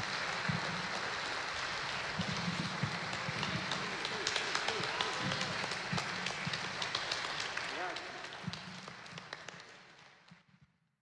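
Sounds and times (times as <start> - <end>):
audience applauding: 0.0 - 10.3.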